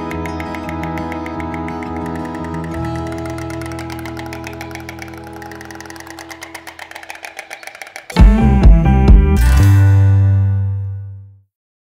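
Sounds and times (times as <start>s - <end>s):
music with held chords and pulse: 0.0s - 11.1s.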